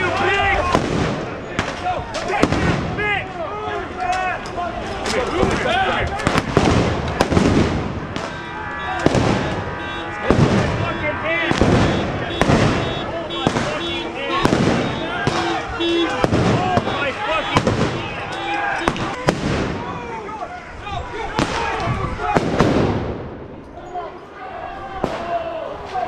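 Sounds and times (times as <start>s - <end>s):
sharp bangs: 0.0s - 3.3s, 4.1s - 20.3s, 21.3s - 23.6s
crowd shouting: 0.0s - 26.0s.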